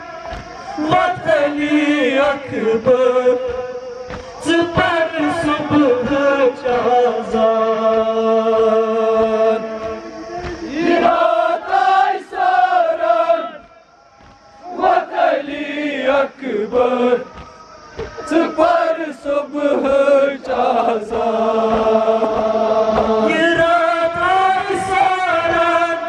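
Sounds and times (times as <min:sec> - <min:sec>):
crowd of men chanting: 0:00.0 - 0:26.0
men chanting lament into microphones: 0:00.0 - 0:26.0
chest-beating thumps: 0:00.2 - 0:15.8, 0:16.7 - 0:25.9.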